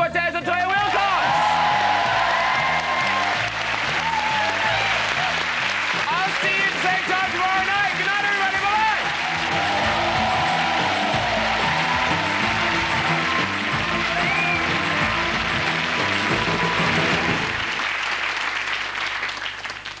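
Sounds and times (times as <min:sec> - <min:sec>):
studio audience applauding: 0:00.5 - 0:20.0
closing theme music: 0:00.6 - 0:18.3.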